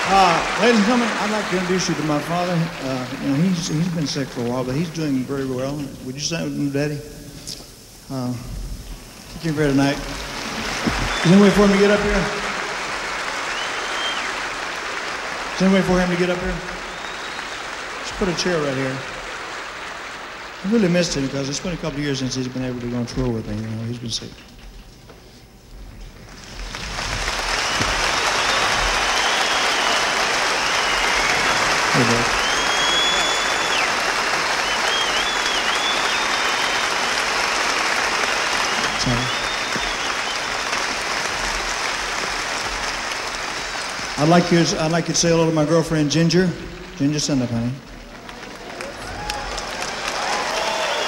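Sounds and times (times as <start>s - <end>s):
audience applauding: 0.0s - 5.8s, 9.3s - 24.3s, 26.1s - 51.0s.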